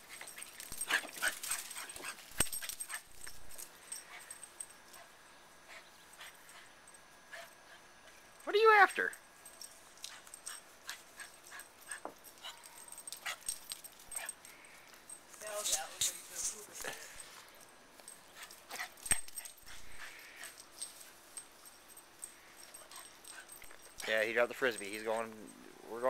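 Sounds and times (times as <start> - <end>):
faint clicks and rustles: 0.0 - 8.5, 9.2 - 25.9.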